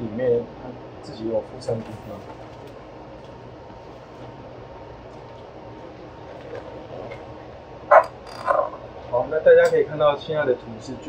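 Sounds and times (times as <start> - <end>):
cooling fans whirring: 0.0 - 11.0.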